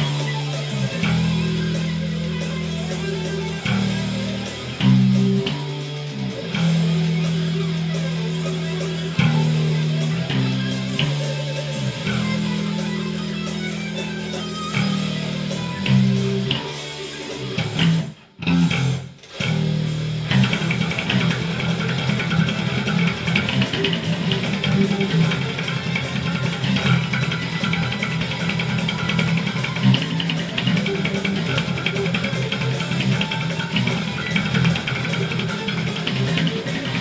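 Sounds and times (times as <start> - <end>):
death metal band playing: 0.0 - 37.0
electric bass played fingerstyle: 0.0 - 37.0.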